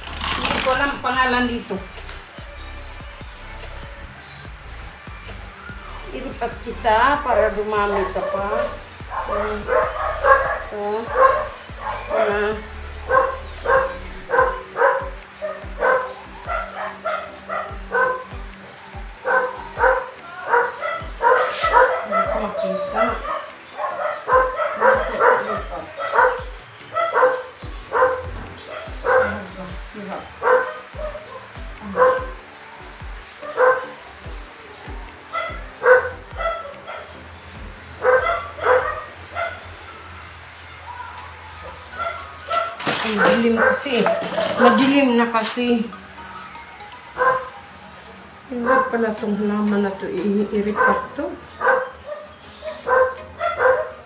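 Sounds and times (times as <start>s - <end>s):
dog barking: 7.9s - 18.4s, 19.2s - 29.7s, 30.4s - 32.4s, 33.4s - 34.0s, 35.3s - 37.2s, 38.0s - 39.7s, 40.8s - 45.1s, 47.2s - 47.6s, 48.6s - 49.4s, 50.6s - 54.0s.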